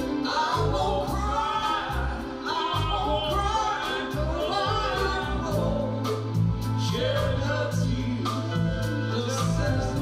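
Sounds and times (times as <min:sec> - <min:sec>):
live band playing ballad: 0:00.0 - 0:10.0
woman singing lead: 0:00.0 - 0:10.0.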